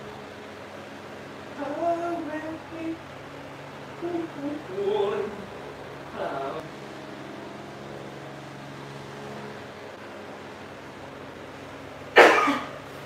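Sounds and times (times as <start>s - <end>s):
steady low hum: 0.0s - 13.0s
person coughing: 12.2s - 12.8s.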